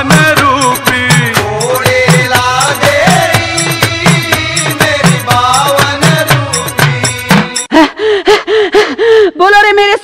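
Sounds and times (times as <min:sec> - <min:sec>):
devotional music: 0:00.0 - 0:08.5
woman's gasping cries: 0:07.7 - 0:09.4.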